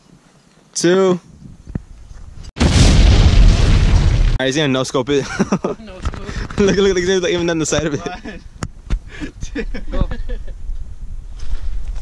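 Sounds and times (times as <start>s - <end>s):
deep heavy explosion: 2.6s - 4.7s.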